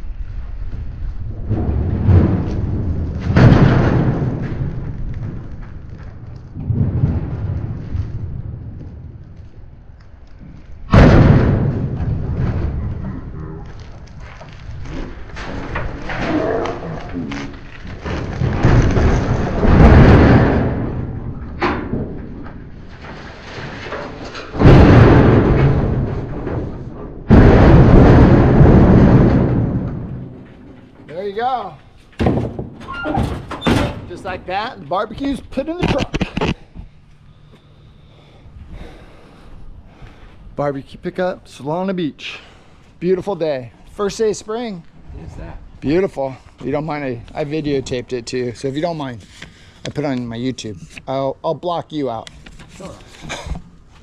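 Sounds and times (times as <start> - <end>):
sudden jolts: 1.2 - 9.8, 10.8 - 36.7.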